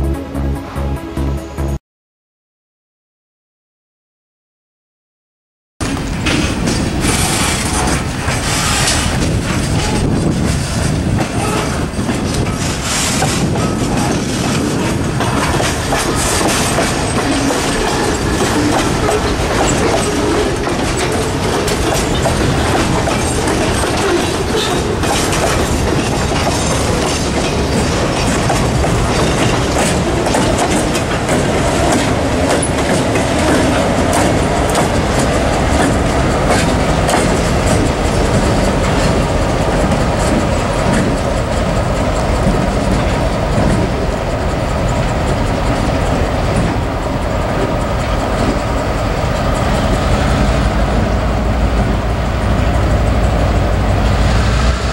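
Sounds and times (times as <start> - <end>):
freight cars rolling past: 5.8 - 54.9
wheels clicking over rail joints: 5.8 - 54.9.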